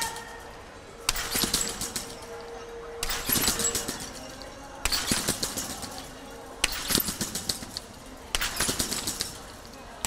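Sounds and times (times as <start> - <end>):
trampoline springs rattling: 0.0 - 10.0.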